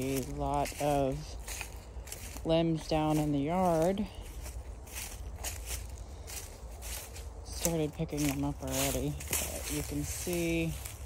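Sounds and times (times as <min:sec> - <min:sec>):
footsteps on dry leaves: 0:00.0 - 0:11.0
steady low rumble: 0:00.0 - 0:11.0.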